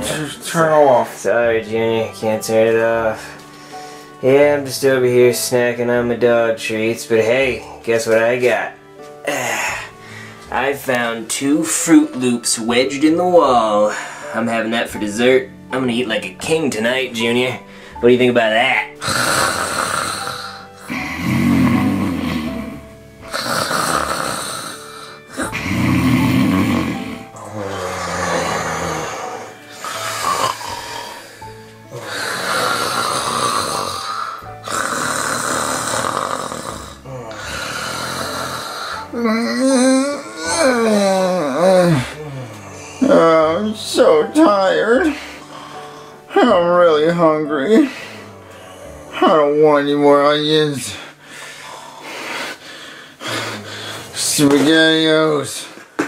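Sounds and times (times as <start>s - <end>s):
music: 0.0s - 56.0s
person breathing: 3.2s - 4.2s, 9.3s - 10.5s, 13.9s - 14.4s, 17.6s - 18.0s, 19.0s - 21.3s, 24.4s - 25.8s, 27.2s - 34.9s, 36.8s - 39.1s, 45.1s - 46.3s, 47.8s - 49.1s, 50.9s - 54.2s
person snoring: 9.2s - 10.5s, 18.9s - 46.6s, 47.6s - 49.5s, 50.1s - 54.7s.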